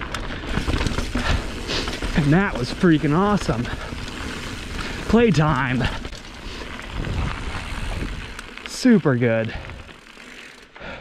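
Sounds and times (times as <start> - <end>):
bike tyres rolling on gravel: 0.0 - 11.0
wind buffeting microphone: 6.9 - 8.4.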